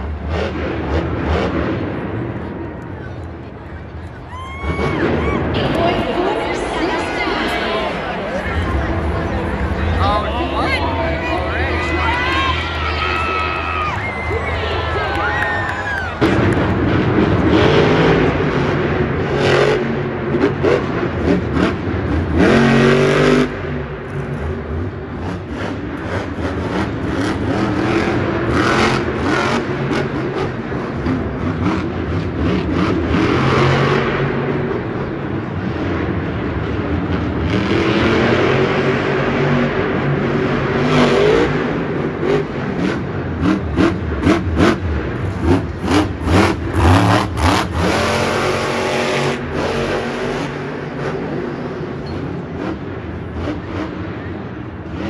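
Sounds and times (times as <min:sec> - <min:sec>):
truck engine revving hard: 0:00.0 - 0:02.6, 0:04.5 - 0:55.0.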